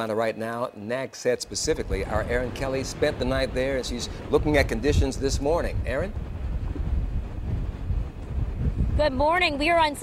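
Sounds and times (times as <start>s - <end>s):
wind buffeting microphone: 1.4s - 10.0s.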